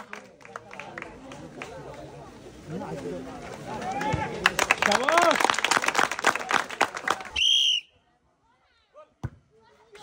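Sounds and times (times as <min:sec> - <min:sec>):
crowd clapping and chattering: 0:00.0 - 0:07.5
referee whistle blast: 0:07.4 - 0:07.9.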